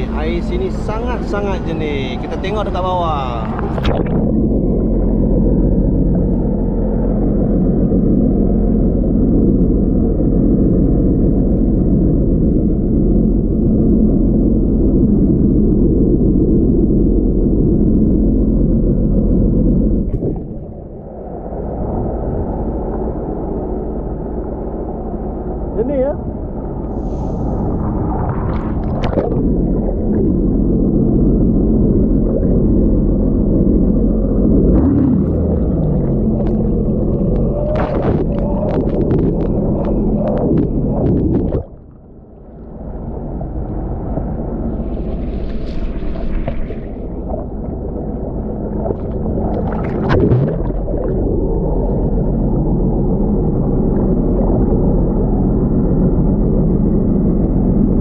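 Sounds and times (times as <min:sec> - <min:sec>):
muffled jet ski engine underwater: 0:00.0 - 0:58.0.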